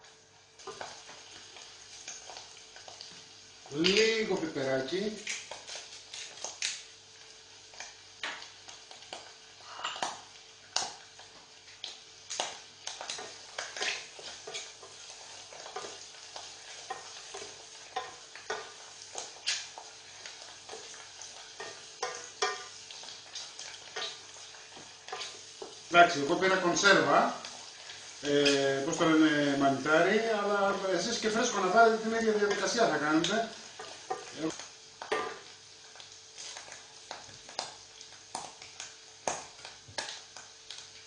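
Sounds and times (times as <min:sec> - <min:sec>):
frying sizzle: 0:00.0 - 0:41.0
spoon knocking and scraping pan: 0:09.7 - 0:10.2, 0:12.4 - 0:25.9, 0:33.7 - 0:34.4, 0:35.0 - 0:35.5.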